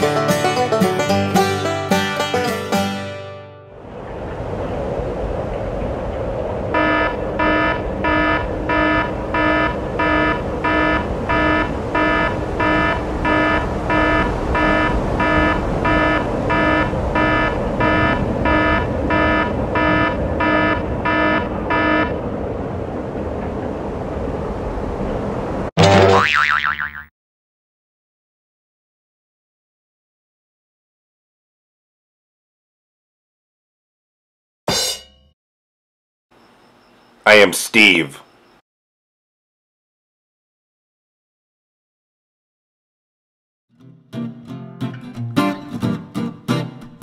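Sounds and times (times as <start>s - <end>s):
steady background noise: 3.8s - 25.7s
electronic alarm beeping: 6.8s - 22.1s
cartoon boing spring sound: 25.8s - 27.1s.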